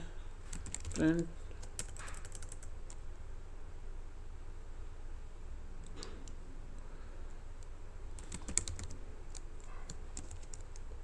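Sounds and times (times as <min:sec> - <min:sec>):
steady low hum: 0:00.0 - 0:11.0
typing on computer keyboard: 0:00.5 - 0:01.0, 0:01.6 - 0:03.0, 0:08.2 - 0:10.9.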